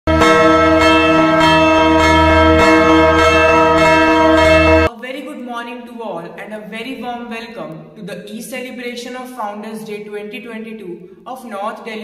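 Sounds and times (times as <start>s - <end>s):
bell ringing: 0.1s - 4.9s.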